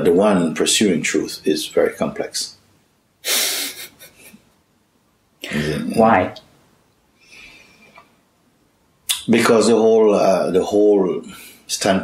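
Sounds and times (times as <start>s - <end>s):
breathy exhale: 7.2s - 8.0s.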